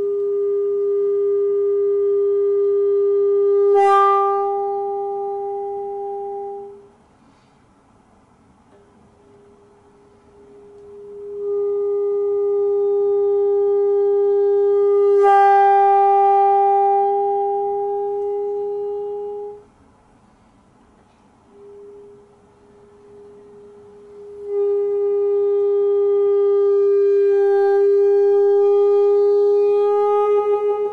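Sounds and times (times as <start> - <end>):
bassoon holding long notes: 0.0 - 6.9, 9.2 - 19.7, 21.5 - 30.9.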